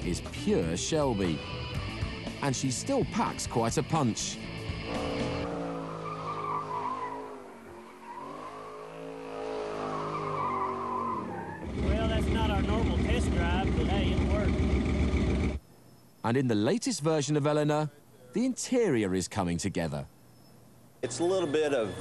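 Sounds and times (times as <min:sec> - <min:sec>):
car engine revving: 0:04.4 - 0:15.6
tyres squealing: 0:04.6 - 0:11.8.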